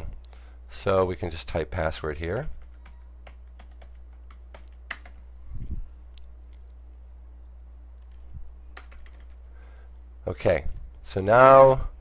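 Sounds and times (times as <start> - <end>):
steady low hum: 0.0 - 12.0
computer keyboard typing: 2.3 - 5.2, 8.0 - 8.2, 8.8 - 9.4.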